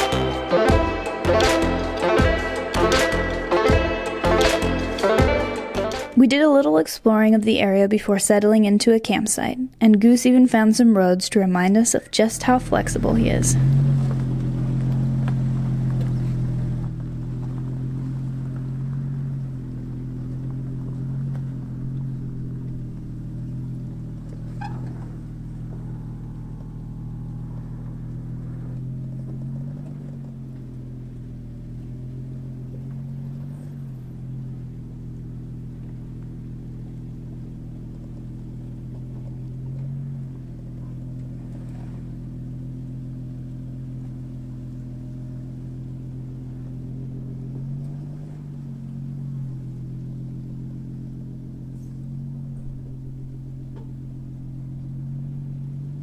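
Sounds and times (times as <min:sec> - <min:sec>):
suv engine running under load: 0:00.0 - 0:06.5, 0:09.1 - 0:56.0.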